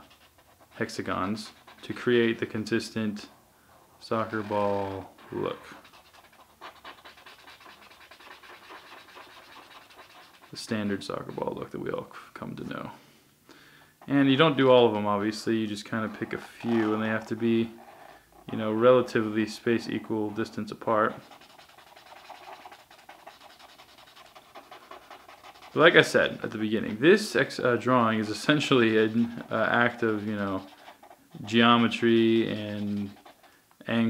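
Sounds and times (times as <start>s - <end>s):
pen scratching on paper: 0.0s - 2.6s, 4.1s - 11.6s, 14.0s - 33.5s.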